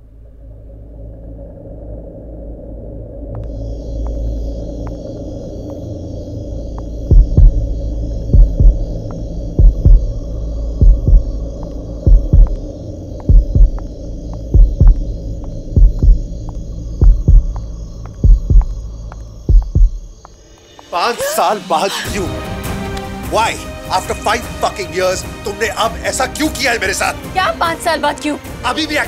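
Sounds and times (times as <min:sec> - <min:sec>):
steady low drone: 0:00.0 - 0:27.7
low double thumps: 0:03.3 - 0:20.8.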